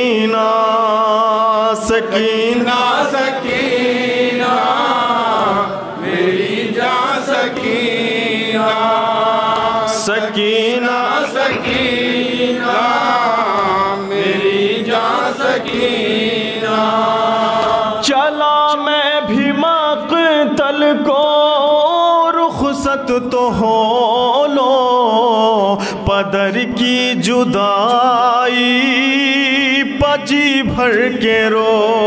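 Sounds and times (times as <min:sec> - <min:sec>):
man chanting through a microphone: 0:00.0 - 0:05.8, 0:07.0 - 0:32.0.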